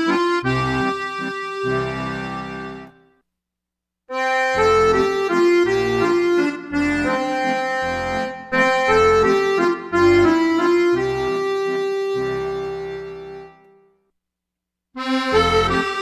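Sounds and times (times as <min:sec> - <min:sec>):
accordion bass notes: 0:00.0 - 0:03.2, 0:04.1 - 0:13.8, 0:15.0 - 0:16.0
accordion melody: 0:00.0 - 0:03.2, 0:04.1 - 0:14.0, 0:15.0 - 0:16.0.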